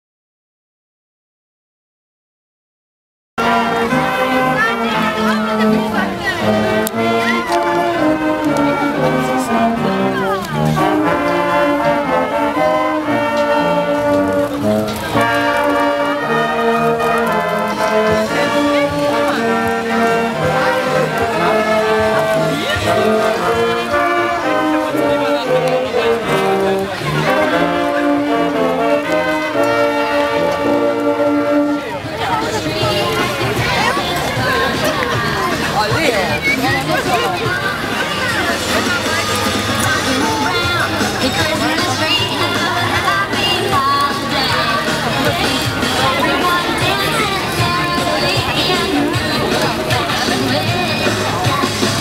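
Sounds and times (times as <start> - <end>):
crowd voices: 3.4 - 52.0
marching brass band playing: 3.4 - 52.0.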